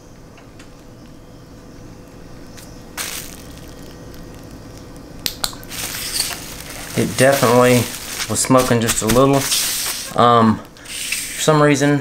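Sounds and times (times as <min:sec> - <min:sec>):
bubble wrap crinkling: 0:02.5 - 0:10.8.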